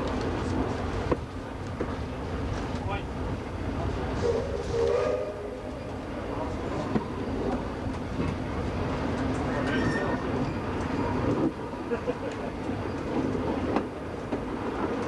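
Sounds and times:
train rumbling on track: 0:00.0 - 0:15.0.

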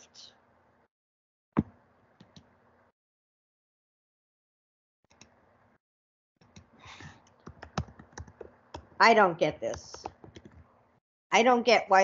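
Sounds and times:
keyboard typing clicks: 0:07.3 - 0:08.9, 0:09.6 - 0:10.6.

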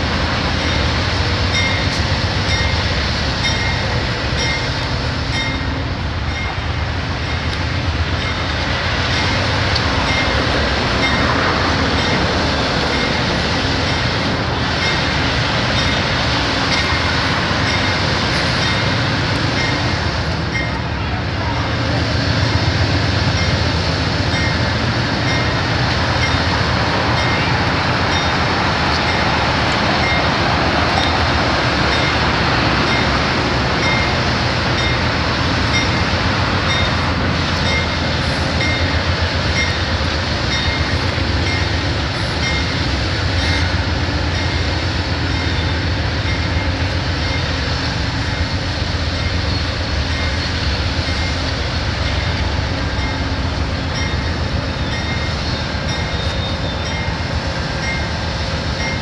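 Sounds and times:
diesel locomotive engine running: 0:00.0 - 0:59.0.

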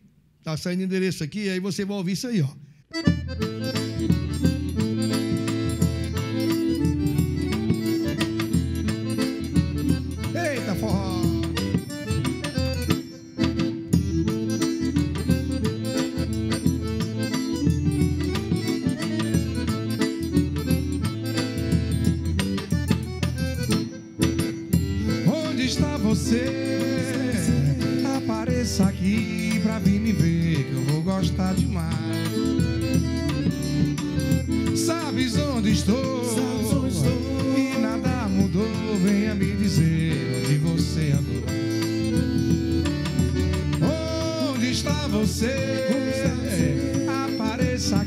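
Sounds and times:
accordion chords: 0:02.3 - 0:48.0
bass drum beat: 0:03.1 - 0:48.0.

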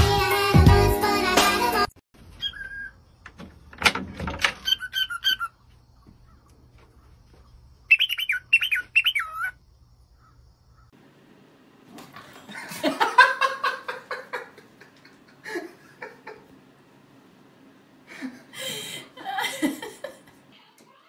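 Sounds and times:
cockatiel whistling and chirping: 0:02.4 - 0:03.0, 0:04.7 - 0:05.5, 0:07.9 - 0:09.5
handling knocks and rattles: 0:03.2 - 0:04.6.

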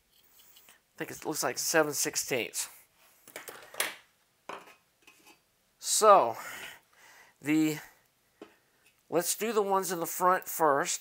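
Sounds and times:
soft rustling of metal parts: 0:00.0 - 0:01.4, 0:02.8 - 0:05.5.

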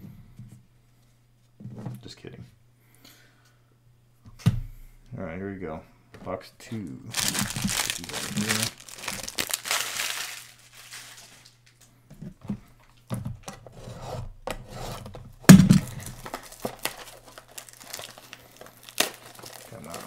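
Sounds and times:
plastic wrap crinkling and tearing: 0:07.1 - 0:11.8, 0:15.8 - 0:20.0
box thump on table: 0:15.5 - 0:15.9.

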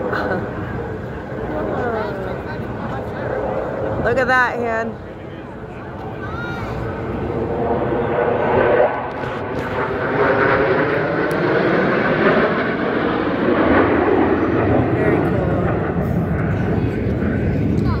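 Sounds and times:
people's voices: 0:00.0 - 0:09.9, 0:14.6 - 0:18.0
jet engines roaring overhead: 0:00.0 - 0:18.0.

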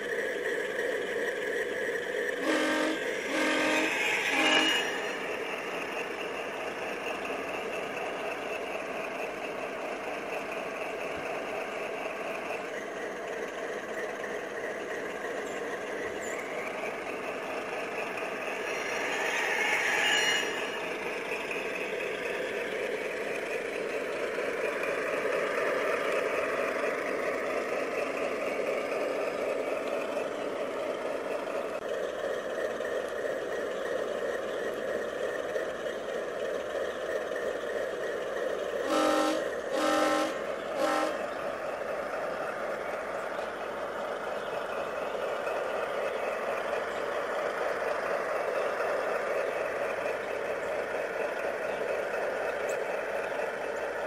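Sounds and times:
model locomotive running: 0:00.0 - 0:54.0
short horn blasts: 0:02.4 - 0:05.2, 0:38.8 - 0:41.3.

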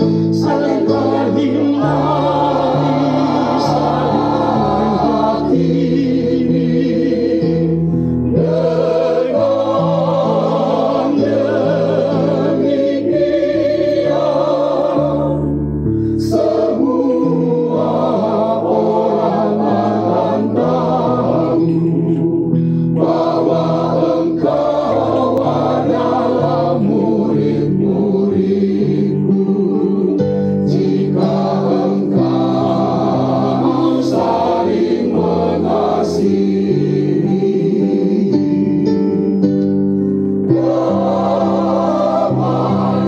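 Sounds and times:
choir singing a hymn: 0:00.0 - 0:43.0.

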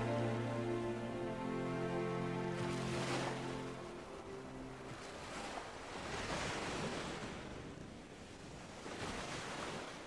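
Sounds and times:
waves rushing on beach: 0:00.0 - 0:10.0.

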